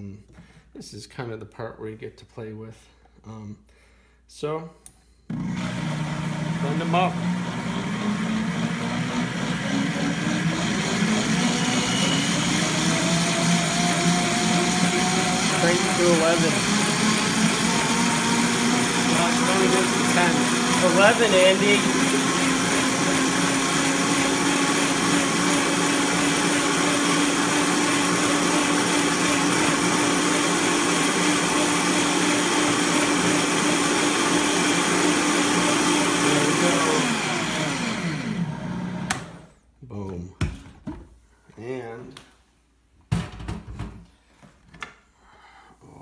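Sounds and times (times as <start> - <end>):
blender running: 5.3 - 39.5.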